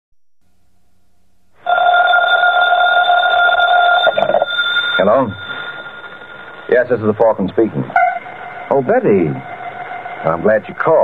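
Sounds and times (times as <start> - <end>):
telephone bell ringing: 1.6 - 8.2.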